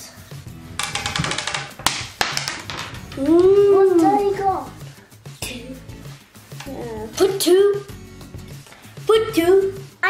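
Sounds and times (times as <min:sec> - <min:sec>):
background music: 0:00.0 - 0:10.0
die clattering on marble: 0:00.8 - 0:03.5.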